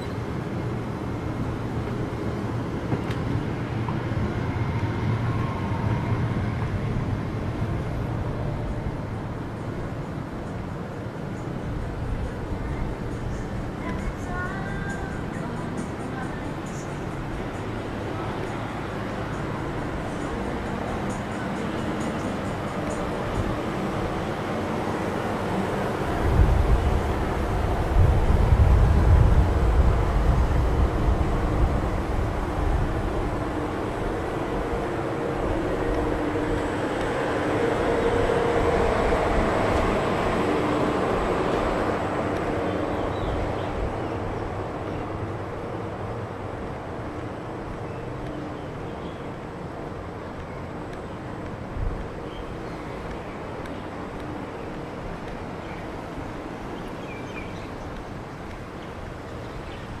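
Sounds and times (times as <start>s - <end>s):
city traffic noise: 0.0s - 60.0s
motor vehicle passing: 17.4s - 47.8s.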